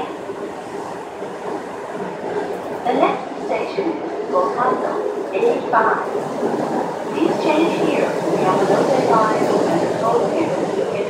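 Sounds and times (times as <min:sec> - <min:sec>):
subway car rolling noise: 0:00.0 - 0:11.0.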